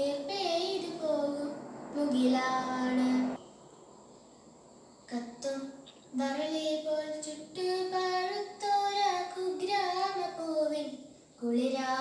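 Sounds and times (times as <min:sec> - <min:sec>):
girl singing: 0:00.0 - 0:03.4, 0:05.1 - 0:12.0
faint background noise: 0:00.0 - 0:12.0.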